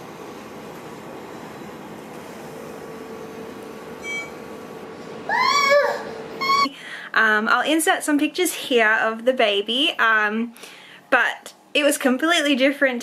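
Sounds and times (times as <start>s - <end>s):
toddler squealing: 5.3s - 6.7s.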